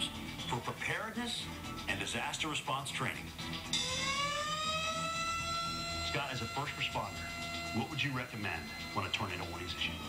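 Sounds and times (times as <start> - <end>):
tornado warning siren wailing: 3.8 - 10.0.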